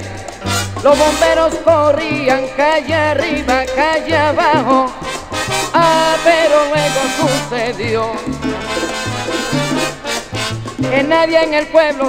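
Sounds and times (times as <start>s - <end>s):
lead singer singing: 0.0s - 8.5s, 10.8s - 12.0s
bass line: 0.0s - 12.0s
percussion: 0.0s - 12.0s
salsa band playing: 0.0s - 12.0s.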